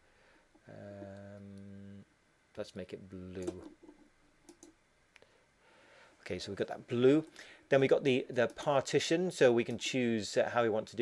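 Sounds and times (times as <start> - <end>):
computer mouse clicks: 3.4 - 4.8.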